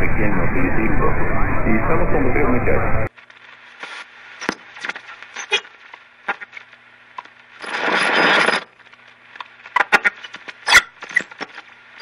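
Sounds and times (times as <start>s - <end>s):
burst of static hiss: 0.0s - 6.0s
radio static crackles: 0.0s - 8.6s.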